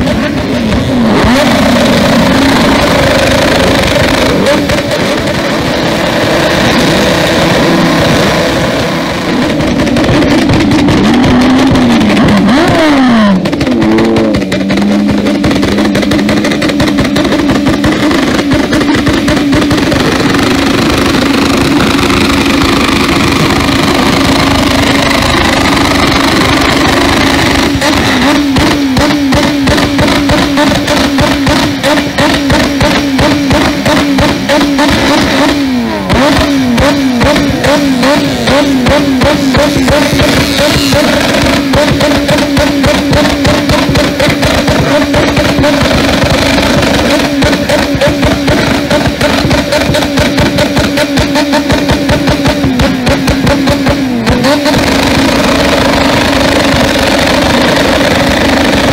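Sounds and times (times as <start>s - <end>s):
motorcycle engines revving at limiter: 0.0s - 58.9s.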